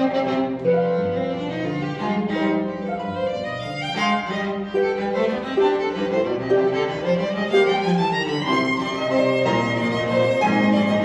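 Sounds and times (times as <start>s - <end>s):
bowed violin melody: 0.0s - 11.0s
cello: 0.0s - 11.0s
harp: 0.0s - 11.0s.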